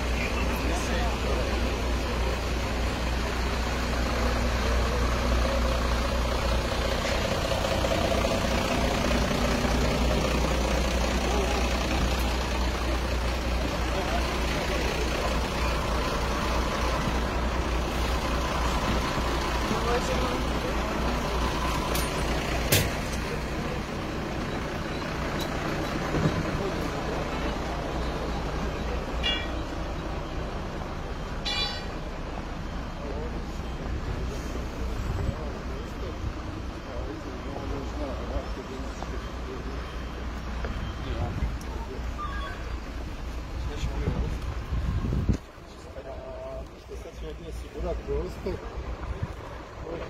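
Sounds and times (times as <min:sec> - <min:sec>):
large vehicle engine rumbling: 0:00.0 - 0:50.0.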